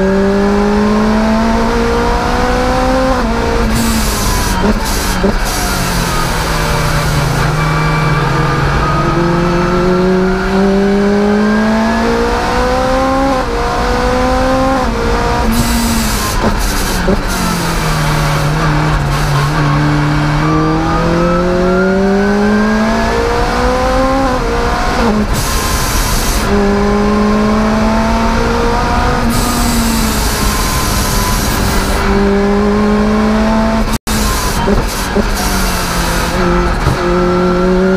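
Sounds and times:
car engine accelerating hard: 0.0 - 37.9.

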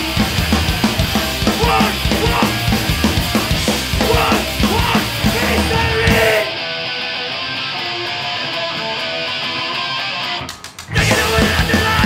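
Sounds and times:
electric guitar playing alone: 0.0 - 12.0
punk band playing live: 0.0 - 12.0.

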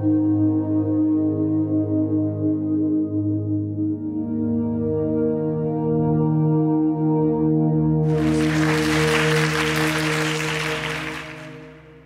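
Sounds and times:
audience applauding: 8.1 - 12.0.

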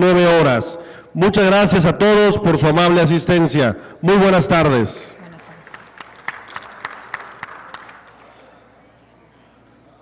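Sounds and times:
faint patter of clapping: 5.4 - 8.6
hands clapping in even rhythm: 5.4 - 8.6.

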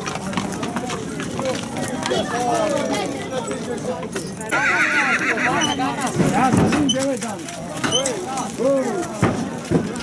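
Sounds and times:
chatter of voices: 0.0 - 10.0
horse whinnying: 4.5 - 5.8.

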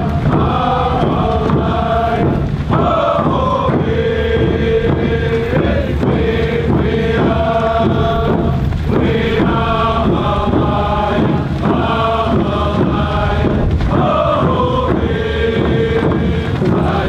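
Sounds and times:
group chanting a song: 0.0 - 17.0.

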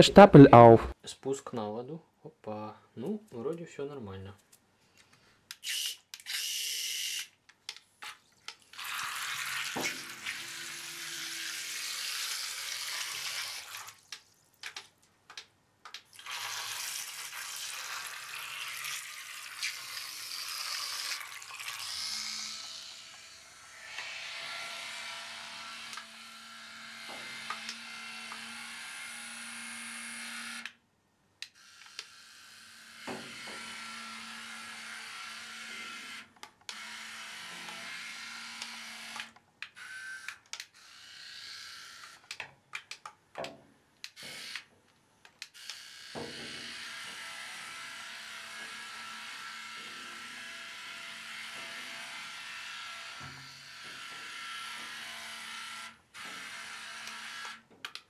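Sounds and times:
toy propeller motors whirring: 5.5 - 7.4, 8.0 - 14.8, 15.9 - 30.8, 31.4 - 43.0, 44.1 - 44.7, 45.3 - 58.0.

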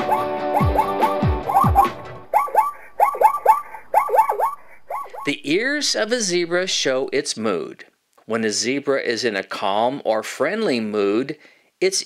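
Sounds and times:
zebra yelping barks: 0.0 - 6.9
narrator speaking: 5.2 - 9.8.

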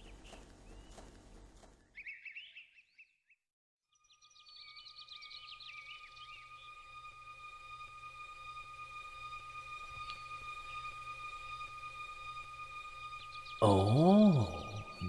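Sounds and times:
birds chirping: 0.0 - 15.0.

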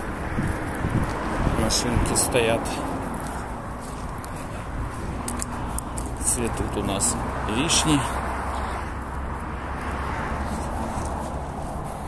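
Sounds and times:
faint footsteps scuffing: 0.0 - 12.0
street noise with low rumble: 0.0 - 12.0.

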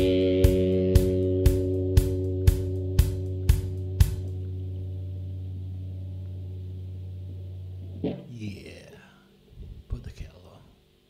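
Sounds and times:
person whispering: 9.9 - 10.8.

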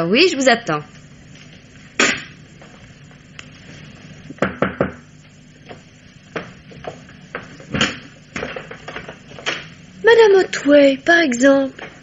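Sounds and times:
knocks on a door: 4.4 - 5.0.

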